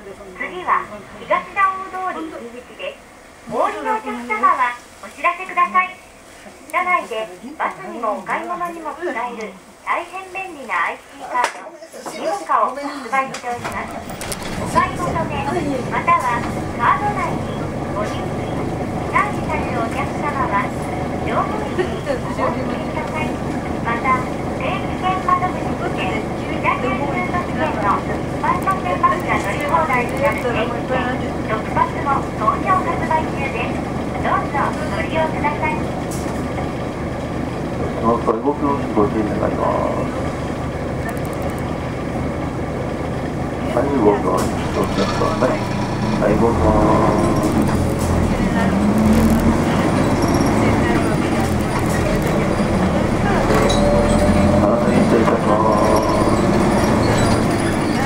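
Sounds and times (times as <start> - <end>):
diesel bus engine idling: 0.0 - 10.2, 13.6 - 58.0
people talking: 0.0 - 36.9, 37.9 - 40.4, 43.5 - 58.0.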